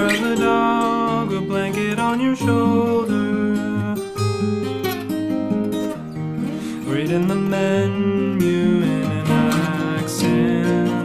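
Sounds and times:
fingerpicked acoustic guitar: 0:00.0 - 0:11.0.

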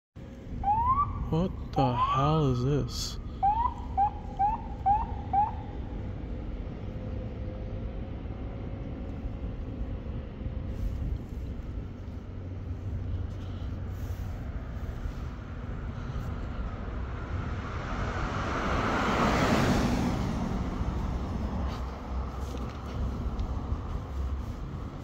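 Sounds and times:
street traffic rumble: 0:00.2 - 0:25.0
vehicle driving past: 0:15.4 - 0:25.0.

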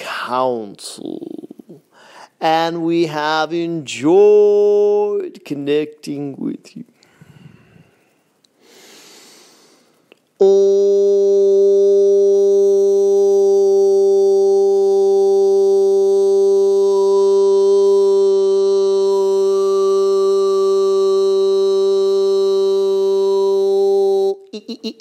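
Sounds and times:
man singing a long low tone: 0:02.9 - 0:05.3, 0:10.4 - 0:25.0.

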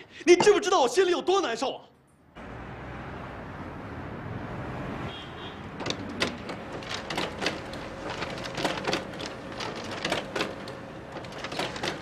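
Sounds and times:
pages feeding clicks and clacks: 0:05.8 - 0:12.0
photocopier humming: 0:05.8 - 0:12.0.

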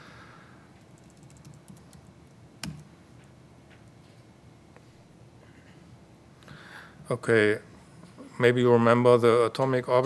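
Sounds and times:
laptop keyboard typing: 0:00.9 - 0:02.9.

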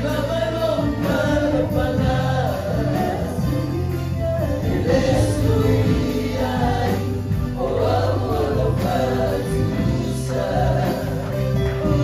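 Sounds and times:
choir singing through microphones: 0:00.0 - 0:12.0
live band accompaniment: 0:00.0 - 0:12.0
low bass notes: 0:00.0 - 0:12.0.

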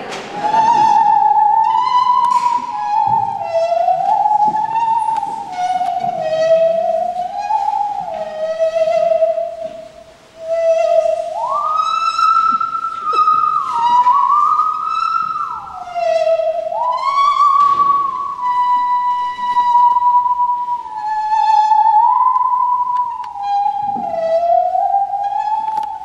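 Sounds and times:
bowed musical saw melody: 0:00.0 - 0:26.0
plucked notes: 0:00.0 - 0:26.0.

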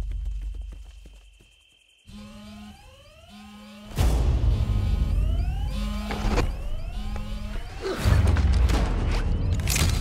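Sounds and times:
rising electronic alarm chirp: 0:00.9 - 0:08.1
low buzzing tone: 0:02.1 - 0:07.7.

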